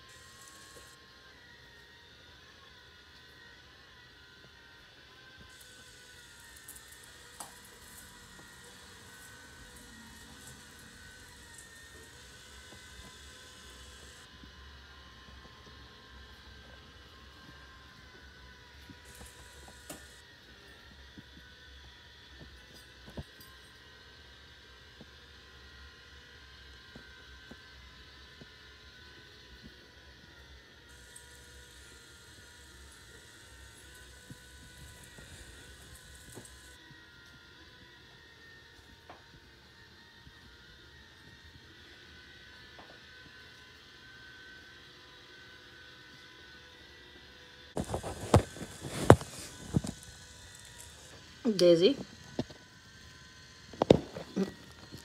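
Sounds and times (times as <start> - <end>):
robot vacuum whirring: 0.0 - 55.0.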